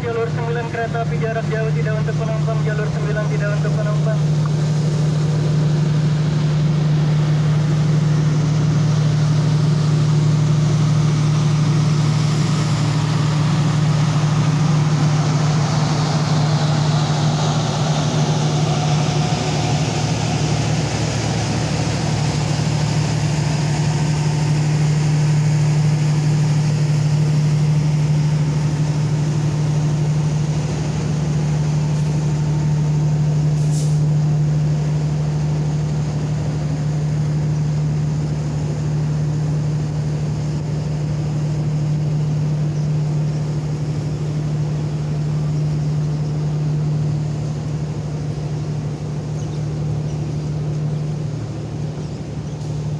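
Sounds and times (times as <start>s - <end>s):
low drone of diesel engines: 0.0s - 52.9s
short high hiss: 33.6s - 34.1s.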